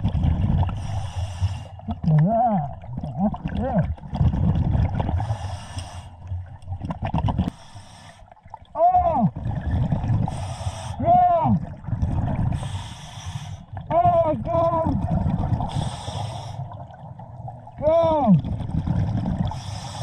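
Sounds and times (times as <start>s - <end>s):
bubbling exhalations with honk: 1.7s - 5.3s, 13.8s - 19.8s
regulator hissing inhalations: 12.6s - 13.7s, 15.7s - 16.7s.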